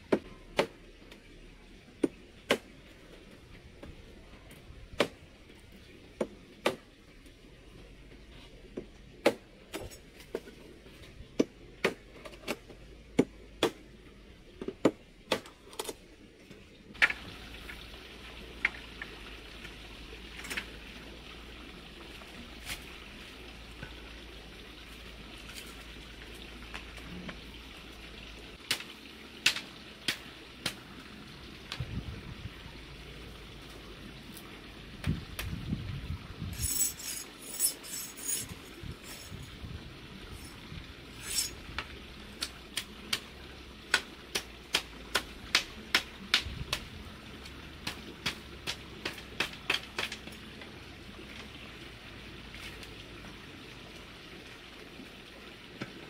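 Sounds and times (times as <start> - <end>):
machete chopping bamboo: 0.1 - 1.2, 2.0 - 2.7, 4.9 - 5.2, 6.2 - 6.8, 9.2 - 10.4, 11.4 - 13.8, 28.7 - 30.8, 43.9 - 46.9, 47.8 - 50.3
bamboo crackling: 28.6 - 30.9, 40.3 - 51.6.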